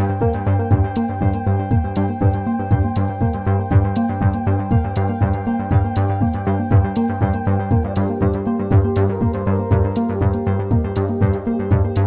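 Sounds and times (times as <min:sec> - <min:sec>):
looping low synth pattern: 0:00.0 - 0:12.0.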